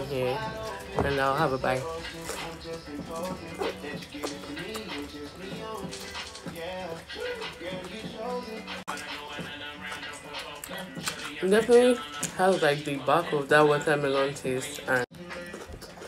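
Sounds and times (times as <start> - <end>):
melodic vocal line: 0.0 - 15.5
background music: 0.0 - 16.0.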